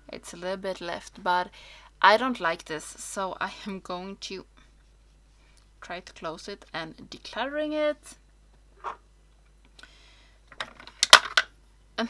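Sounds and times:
plastic packaging clicks and knocks: 10.5 - 11.5.

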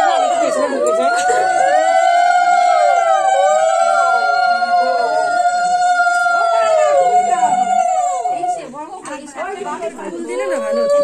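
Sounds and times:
women ululating: 0.0 - 8.7, 10.3 - 11.0
people chattering: 0.0 - 11.0.

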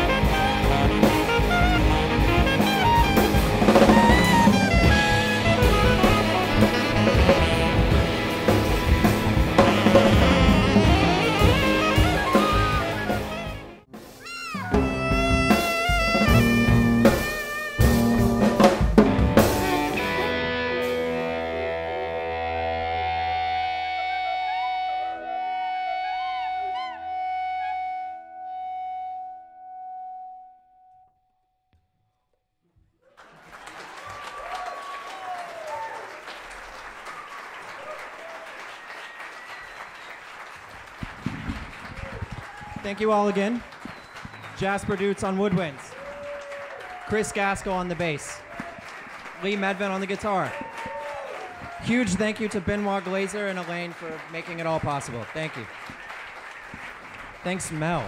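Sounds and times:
audience applauding: 0.0 - 20.3, 33.0 - 58.0
small jazz band playing: 0.0 - 29.0.

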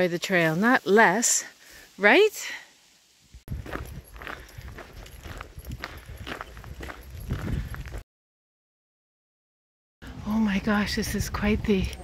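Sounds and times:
footsteps walking: 3.5 - 8.0.

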